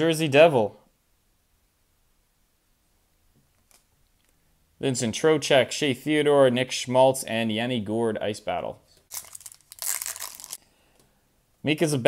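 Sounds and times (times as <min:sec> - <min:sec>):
wrapper crinkling and tearing: 0:09.1 - 0:10.6.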